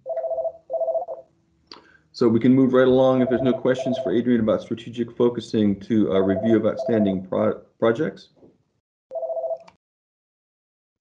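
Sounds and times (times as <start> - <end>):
two-tone electronic beeps: 3.1 - 4.2, 6.1 - 7.1.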